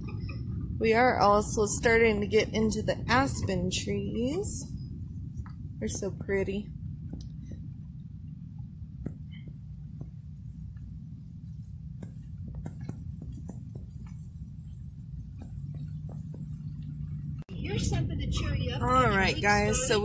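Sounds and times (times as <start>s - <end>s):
vehicle cabin low rumble: 0.0s - 20.0s.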